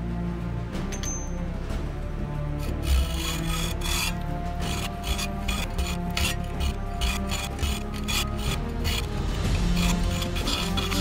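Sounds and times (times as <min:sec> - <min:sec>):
hacksaw cutting steel pipe: 0:02.5 - 0:11.0.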